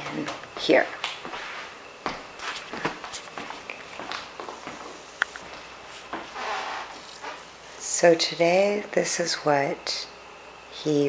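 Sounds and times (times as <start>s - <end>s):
footsteps on wood floor: 0.2s - 7.5s.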